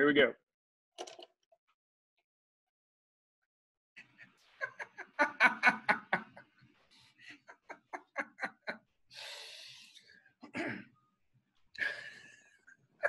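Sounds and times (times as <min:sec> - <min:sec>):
person laughing: 0:04.6 - 0:06.4, 0:07.2 - 0:08.8
breathy exhale: 0:09.1 - 0:10.0.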